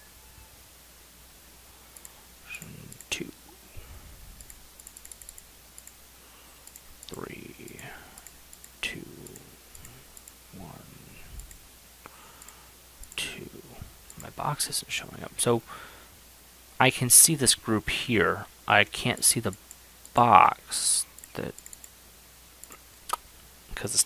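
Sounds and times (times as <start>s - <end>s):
mouse and keyboard clicking: 4.4s - 6.0s, 21.2s - 21.9s.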